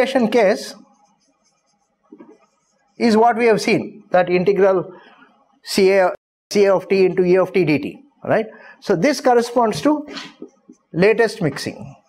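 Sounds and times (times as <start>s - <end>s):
marker writing on a whiteboard: 0.3s - 3.2s, 9.8s - 12.0s.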